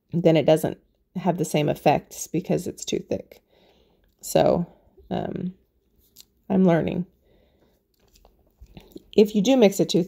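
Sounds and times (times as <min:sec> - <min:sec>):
woman speaking: 0:00.0 - 0:03.4, 0:04.2 - 0:05.6, 0:06.5 - 0:07.1, 0:09.0 - 0:10.0
woman breathing in: 0:03.4 - 0:04.1, 0:07.2 - 0:07.9.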